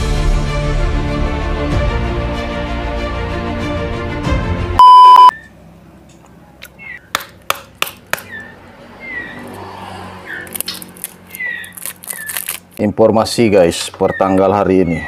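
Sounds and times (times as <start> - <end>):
test-pattern beep: 4.8 - 5.3
birds chirping: 6.5 - 7.2, 8.2 - 9.6, 10.2 - 12.5, 13.7 - 15.0.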